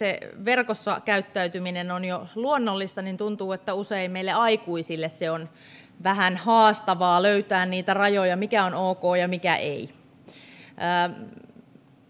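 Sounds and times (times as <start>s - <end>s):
woman breathing in: 5.6s - 6.0s, 10.3s - 10.8s.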